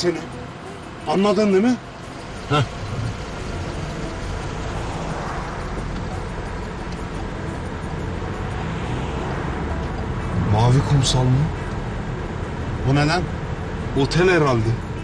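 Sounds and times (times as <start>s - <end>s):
road and engine rumble in car: 0.0s - 15.0s.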